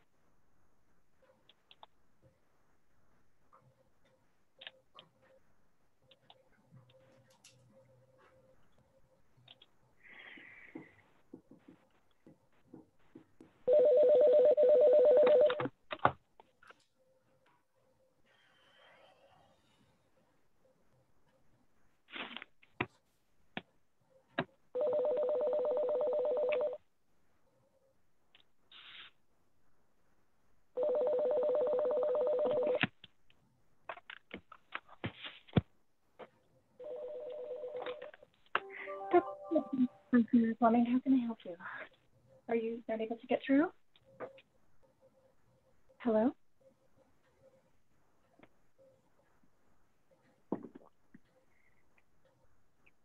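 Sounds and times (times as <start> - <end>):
telephone ringing two-tone trill: 13.7 - 15.6, 24.8 - 26.8, 30.8 - 32.8, 36.8 - 38.1.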